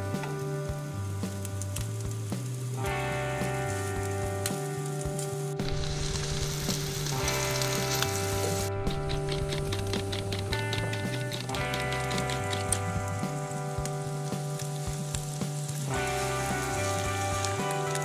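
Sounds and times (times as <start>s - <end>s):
instrumental background music: 0.0s - 18.0s
sausage frying in a pan: 0.0s - 18.0s.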